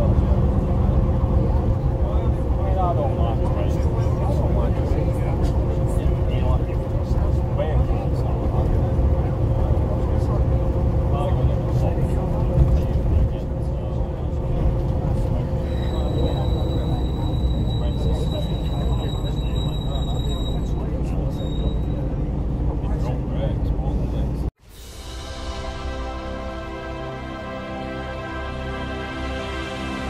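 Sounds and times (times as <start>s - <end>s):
passengers chatting quietly: 0.0s - 24.5s
diesel engine rumble: 0.0s - 24.6s.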